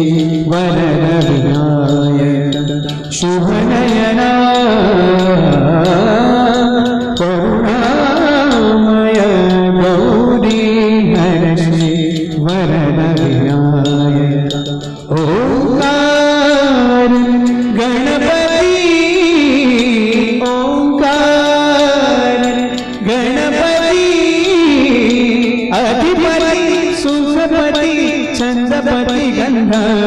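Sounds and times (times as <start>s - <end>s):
small hand cymbals: 0.0s - 30.0s.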